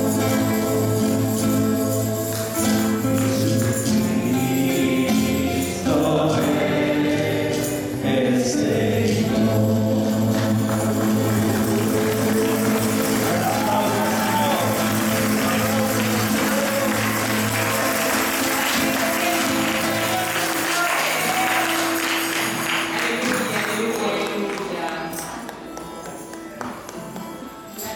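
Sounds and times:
worship song with singing: 0.0s - 25.3s.

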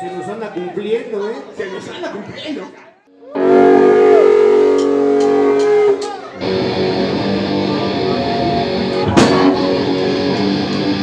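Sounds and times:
electric guitar chord with feedback: 3.3s - 11.0s.

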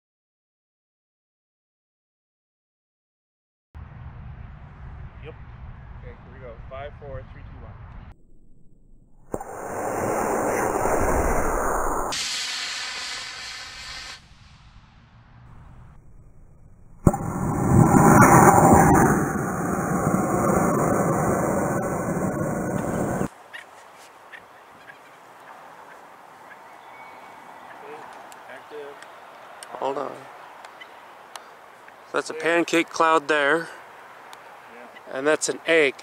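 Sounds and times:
sharp crack: 9.2s - 23.3s
rocket motor rushing hiss: 9.3s - 14.8s.

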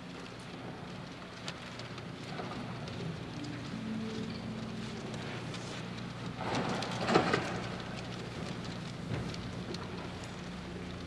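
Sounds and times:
congregation rustles and clicks: 1.1s - 11.0s.

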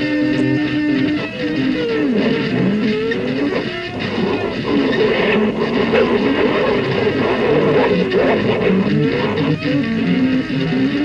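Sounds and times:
electric guitar notes bending: 0.0s - 11.0s.

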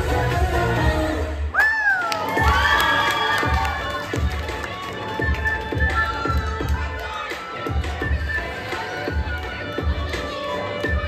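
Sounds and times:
music with steady beat: 0.0s - 1.5s, 3.4s - 11.0s
crowd cheering with whoops: 1.5s - 10.9s.

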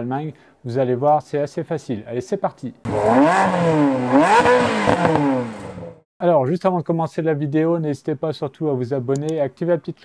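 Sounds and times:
car engine revving: 2.9s - 6.0s.

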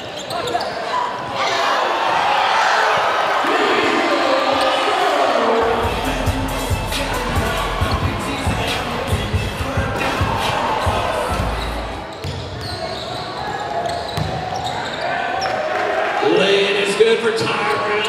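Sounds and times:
voices echoing in a gym: 0.0s - 18.0s.

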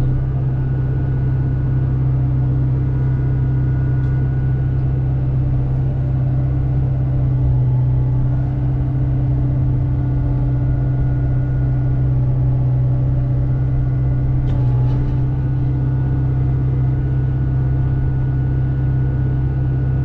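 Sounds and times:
excavator diesel engine droning: 0.0s - 20.0s.

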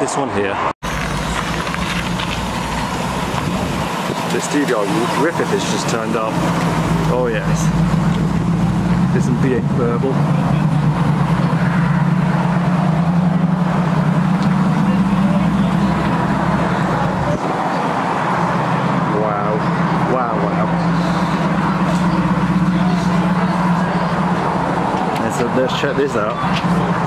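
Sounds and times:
car engine low burble: 0.8s - 27.0s.

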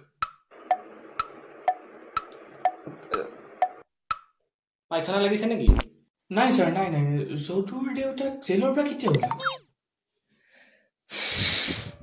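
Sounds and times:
heavy breath: 10.4s - 12.0s.

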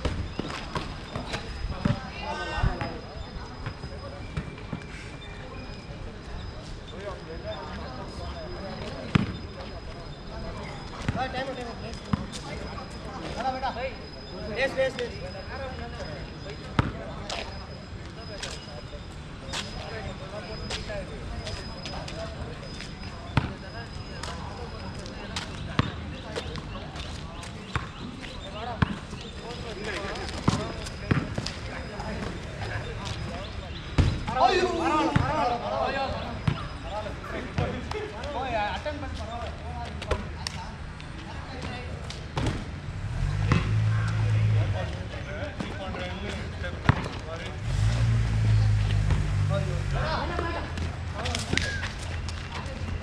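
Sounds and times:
distant players' voices: 0.0s - 53.0s
basketball bouncing: 30.4s - 31.5s, 46.8s - 47.2s.

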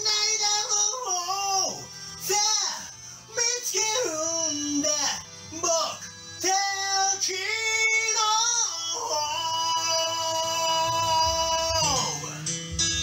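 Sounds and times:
music backing track: 0.0s - 13.0s
wordless high singing: 0.0s - 13.0s.

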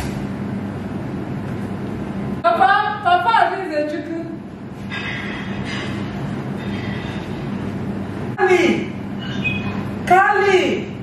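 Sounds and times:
steady rumbling noise: 0.0s - 11.0s.

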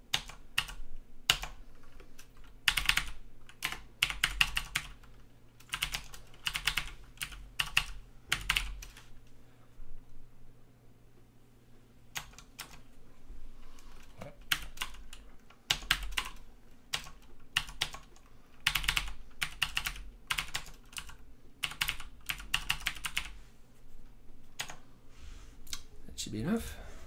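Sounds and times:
typing on computer keyboard: 0.1s - 9.0s, 12.2s - 12.8s, 14.0s - 23.3s, 24.6s - 24.8s.

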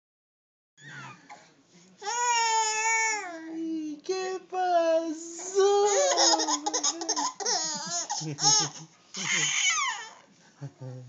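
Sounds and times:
baby laughing: 5.9s - 10.2s.

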